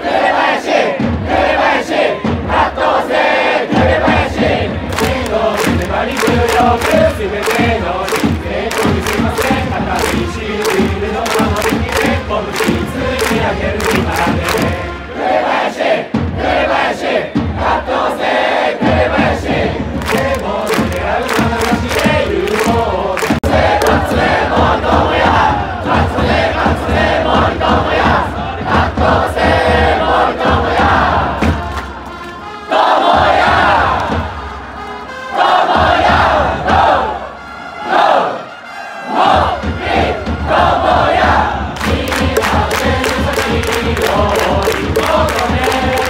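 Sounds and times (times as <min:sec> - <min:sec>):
crowd chanting: 0:00.0 - 0:32.1, 0:32.7 - 0:34.4, 0:35.0 - 0:46.0
crowd singing in unison: 0:00.0 - 0:46.0.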